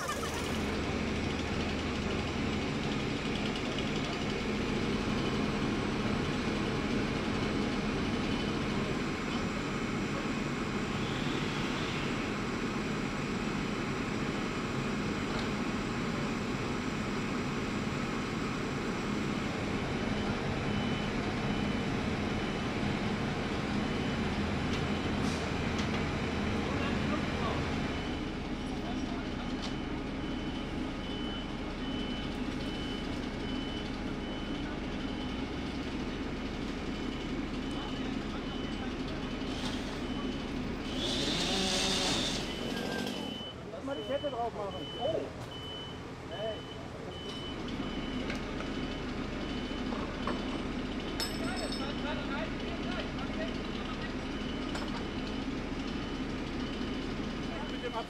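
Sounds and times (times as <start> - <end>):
truck engine running: 0.0 - 58.0
high warning beeps: 42.4 - 50.6, 54.2 - 58.0.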